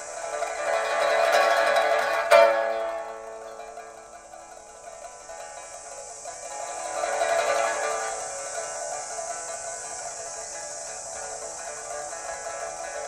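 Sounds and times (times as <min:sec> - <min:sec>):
pipa playing: 0:00.0 - 0:13.0
steady high hiss: 0:00.0 - 0:13.0.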